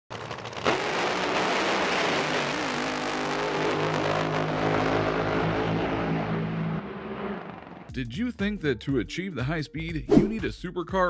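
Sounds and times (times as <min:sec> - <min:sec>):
boat engine at full power: 0:00.2 - 0:07.9.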